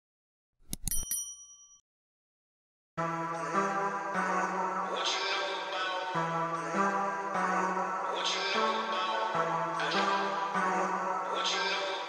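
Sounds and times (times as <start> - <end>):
bright bell ding: 0.8 - 1.8.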